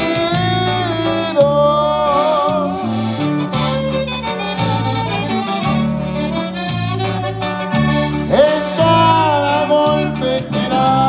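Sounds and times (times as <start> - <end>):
accordion: 0.0 - 11.0
bajo sexto: 0.0 - 11.0
bass guitar polka beat: 0.0 - 11.0
saxophone: 0.0 - 11.0.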